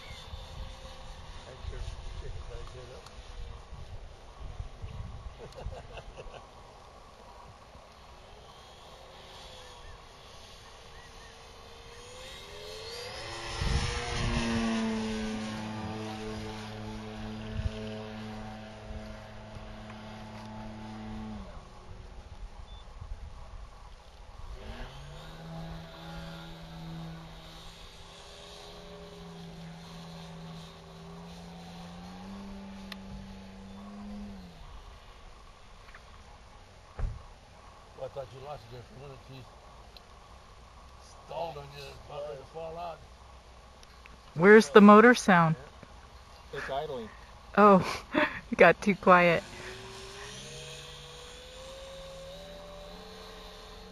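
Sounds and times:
model airplane engine: 0.0s - 53.9s.

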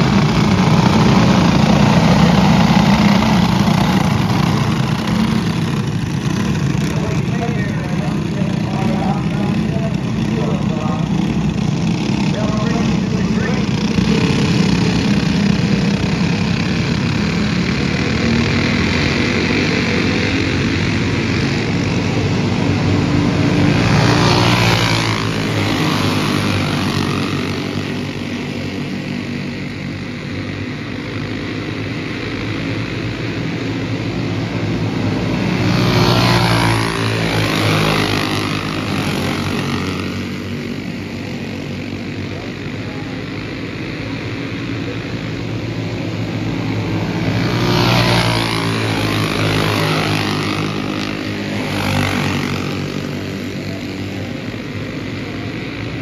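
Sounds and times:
go-kart engines buzzing: 0.0s - 56.0s.

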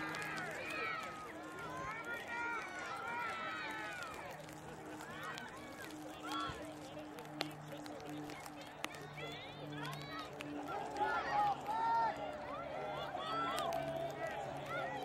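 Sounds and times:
people shouting: 9.8s - 15.0s.

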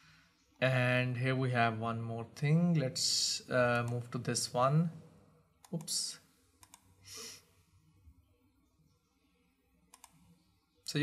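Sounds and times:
computer mouse clicks: 6.6s - 6.9s, 9.9s - 10.4s
soft breath: 7.0s - 7.8s.

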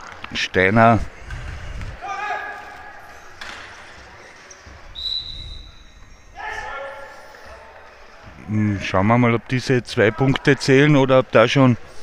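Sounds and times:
referee's whistle blowing: 4.9s - 7.0s.

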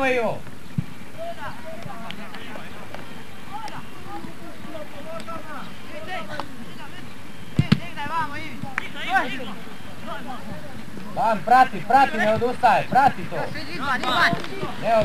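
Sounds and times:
distant shouts and calls: 0.0s - 15.0s.

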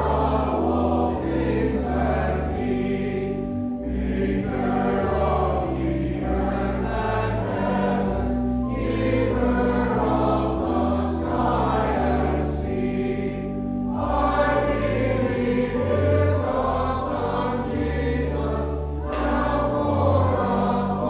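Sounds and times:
choir singing a hymn: 0.0s - 21.0s
organ playing: 0.0s - 21.0s.

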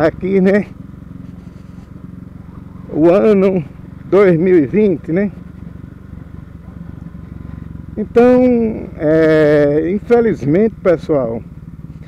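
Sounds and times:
motorcycle engine running low: 0.0s - 12.0s.

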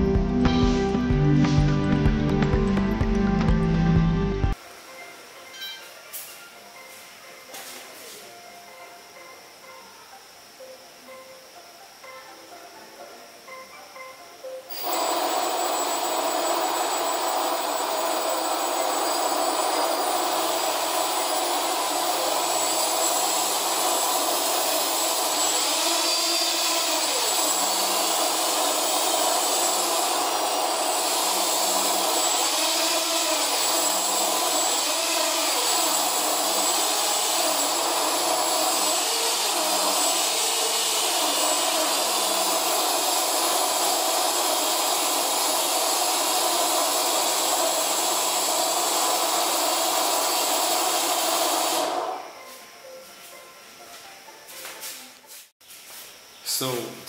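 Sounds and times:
drone motors whining: 14.7s - 53.0s.

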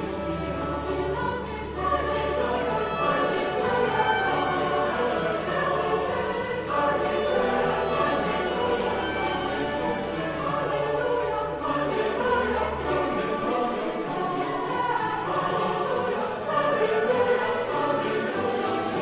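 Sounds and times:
choir singing sacred music: 0.0s - 19.0s.

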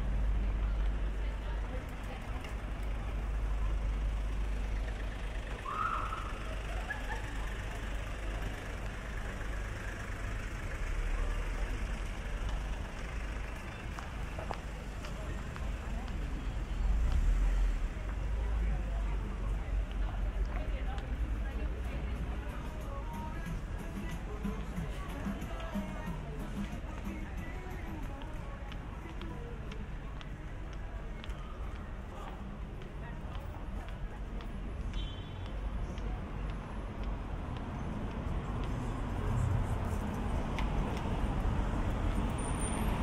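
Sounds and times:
pedestrians' voices: 0.0s - 43.0s
traffic rumble: 0.0s - 43.0s.

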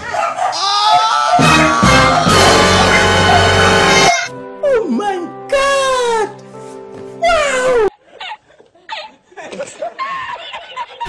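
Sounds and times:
man laughing: 7.6s - 11.0s.

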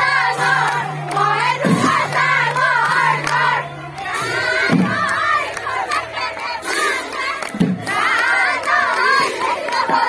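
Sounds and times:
women singing and calling out: 0.0s - 10.0s.

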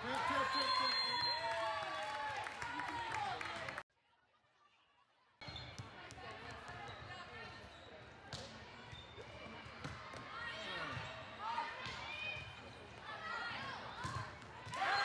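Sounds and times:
voices of players and spectators: 0.0s - 15.0s
volleyball bouncing on court: 13.9s - 15.0s.

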